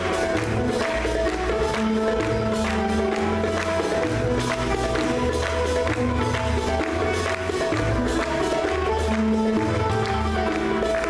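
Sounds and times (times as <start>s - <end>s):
plucked strings: 0.0s - 11.0s
sustained melodic notes: 0.0s - 11.0s.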